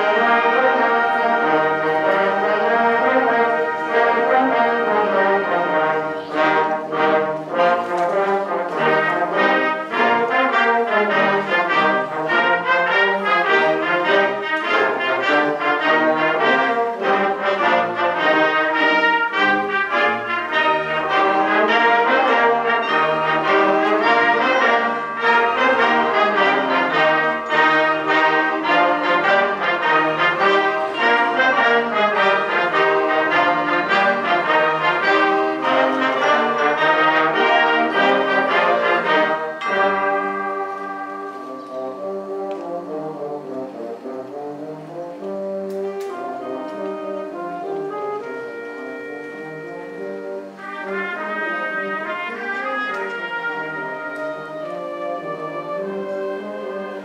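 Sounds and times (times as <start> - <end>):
concert band playing: 0.0 - 57.0.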